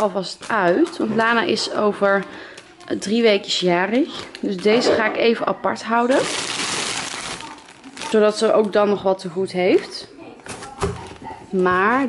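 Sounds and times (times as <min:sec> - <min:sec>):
foil gift wrap crinkling: 0:00.0 - 0:04.9, 0:05.8 - 0:08.9.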